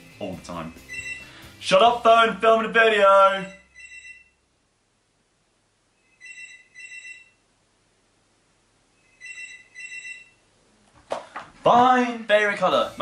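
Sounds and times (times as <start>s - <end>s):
phone ringtone: 0.8s - 1.4s, 3.5s - 4.4s, 6.0s - 7.4s, 9.0s - 10.4s.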